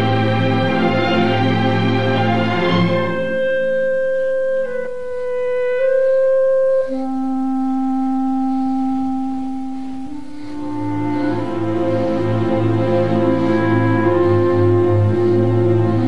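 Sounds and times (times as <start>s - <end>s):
orchestra playing long held notes: 0.0s - 16.0s.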